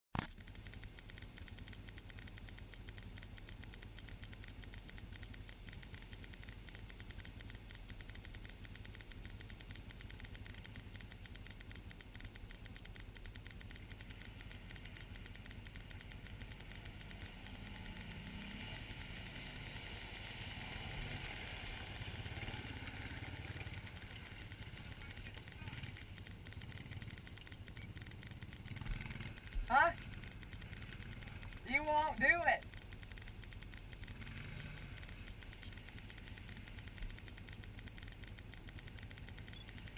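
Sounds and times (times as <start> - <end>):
atv engine humming: 0.2 - 39.9
second atv engine: 0.2 - 39.9.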